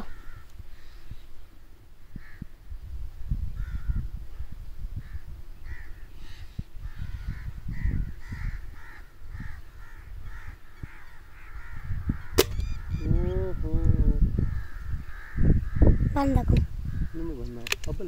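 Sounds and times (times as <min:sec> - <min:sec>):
crows cawing: 0:00.0 - 0:01.1, 0:02.1 - 0:02.6, 0:03.6 - 0:04.1, 0:05.0 - 0:17.4
air rifle firing: 0:12.3 - 0:12.7.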